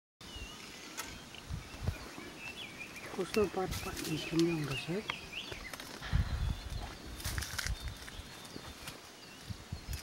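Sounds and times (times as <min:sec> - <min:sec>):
faint high bird chirp: 0:00.2 - 0:10.0
low thumps: 0:06.0 - 0:07.3.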